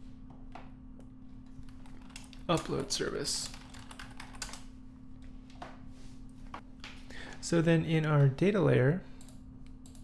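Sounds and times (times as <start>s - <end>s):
computer keyboard keystrokes: 1.7s - 4.6s.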